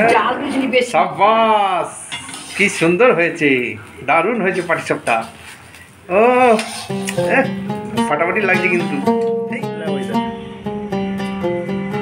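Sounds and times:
metal spatula scraping iron pan: 2.1s - 3.0s, 6.4s - 7.4s
person speaking: 6.1s - 10.4s.

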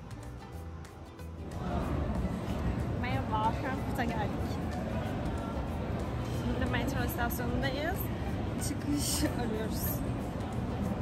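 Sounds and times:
woman speaking: 6.5s - 10.0s.

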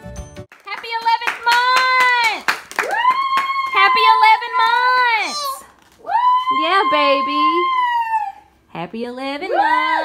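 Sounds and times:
background music: 0.0s - 0.5s
hand clapping in rhythm: 0.4s - 4.0s.

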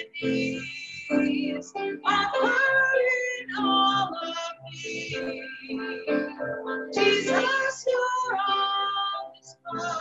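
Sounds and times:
grand piano accompaniment: 0.0s - 10.0s
woman singing a hymn: 0.0s - 10.0s.

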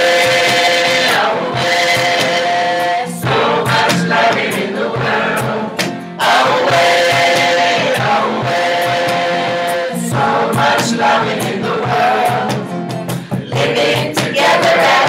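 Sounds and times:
woman singing: 0.0s - 12.7s, 13.4s - 15.0s
acoustic guitar strumming: 0.0s - 15.0s
man singing: 13.3s - 15.0s.

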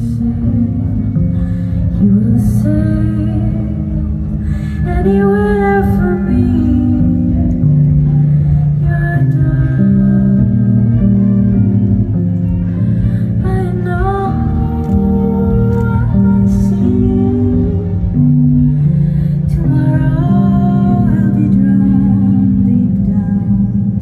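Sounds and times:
electronic keyboard chords: 0.0s - 24.0s
woman singing wordless phrases: 2.0s - 7.6s, 13.3s - 18.4s, 19.5s - 24.0s.

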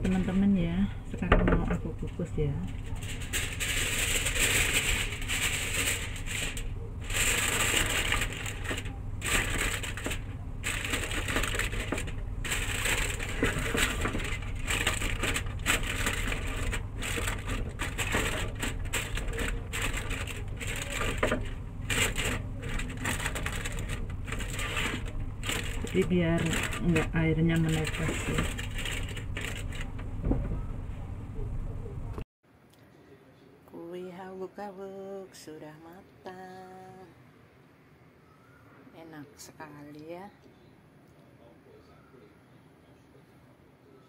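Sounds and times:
aluminium foil crinkling: 0.0s - 30.5s
steady low hum: 0.0s - 34.3s.

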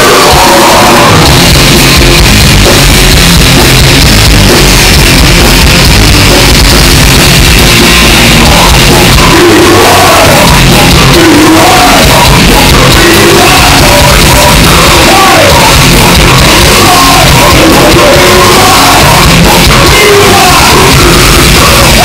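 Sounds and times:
death metal band playing: 0.0s - 22.0s.

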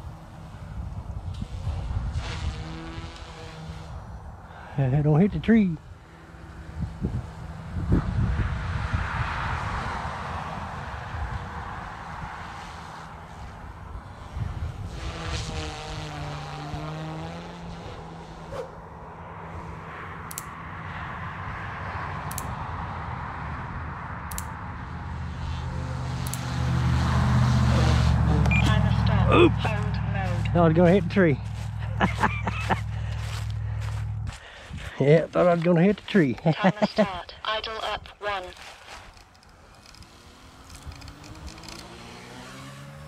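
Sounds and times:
electric motors whining: 38.6s - 43.0s
rotor blades whirring: 38.6s - 43.0s.

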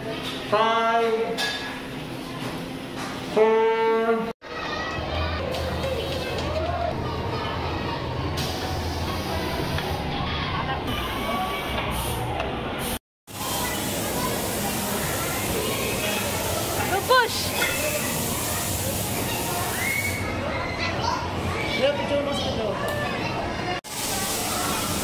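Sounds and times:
crowd babble: 4.4s - 25.0s.

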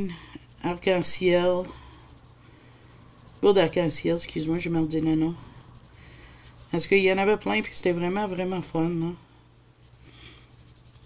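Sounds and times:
pencil scratching on paper: 0.0s - 8.9s, 9.8s - 11.0s.

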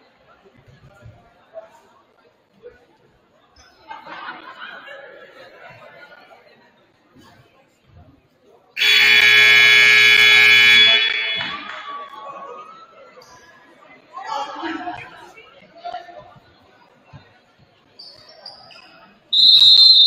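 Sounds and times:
scoreboard buzzer blare: 8.8s - 11.8s.

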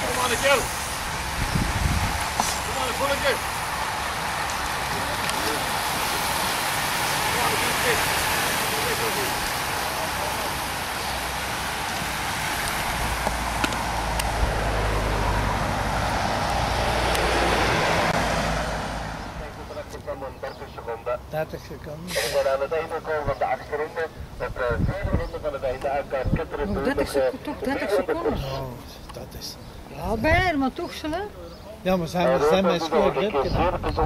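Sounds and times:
bicycles rushing past: 0.0s - 19.8s
low engine rumble: 0.0s - 26.2s.

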